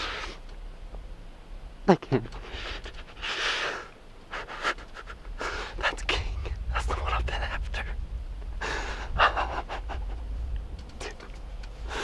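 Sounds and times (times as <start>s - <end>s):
man breathing hard: 2.4s - 5.8s, 8.5s - 9.5s, 11.8s - 12.0s.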